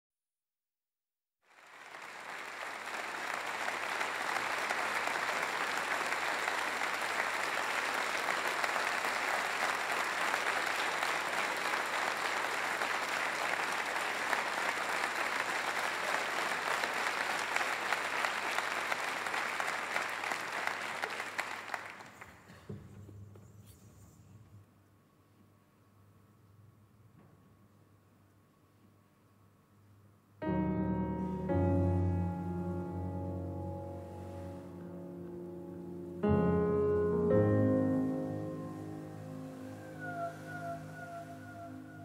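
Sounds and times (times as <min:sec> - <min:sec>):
audience applauding: 0:01.4 - 0:22.7, 0:38.2 - 0:42.0.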